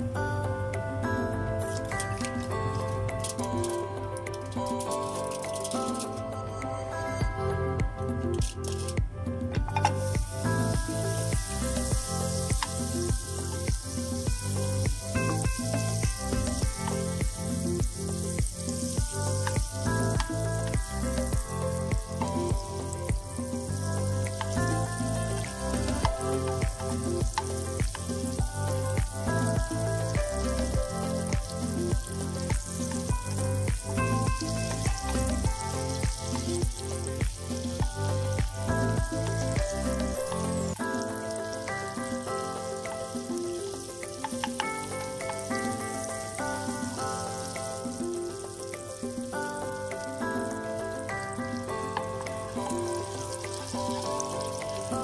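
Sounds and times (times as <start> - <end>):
background music with steady beat: 0.0 - 55.0
butter sizzling in a frying pan: 9.8 - 55.0.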